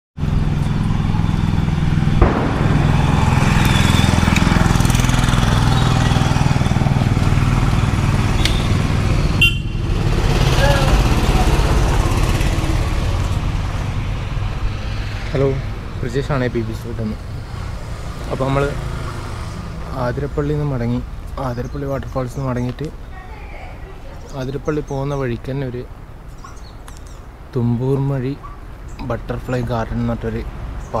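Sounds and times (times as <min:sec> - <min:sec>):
vehicle engines rumbling: 0:00.2 - 0:31.0.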